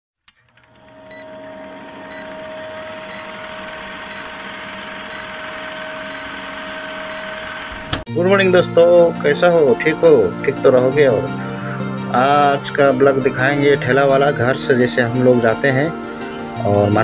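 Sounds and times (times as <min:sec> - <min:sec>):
short high beeps: 0:01.1 - 0:01.4, 0:02.0 - 0:07.7.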